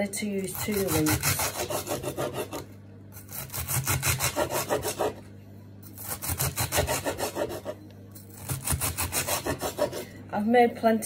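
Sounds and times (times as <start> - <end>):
knife chopping on wooden board: 0.5 - 2.7, 3.3 - 5.2, 6.0 - 7.8, 8.4 - 10.0.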